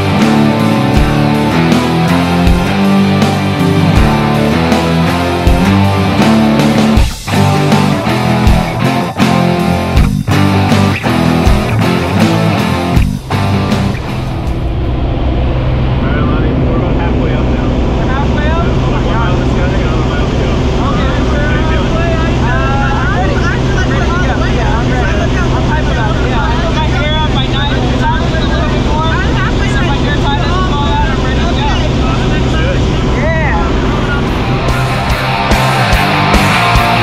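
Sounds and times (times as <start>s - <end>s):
propeller plane engine in cabin: 11.2s - 35.8s
people talking: 16.0s - 35.7s.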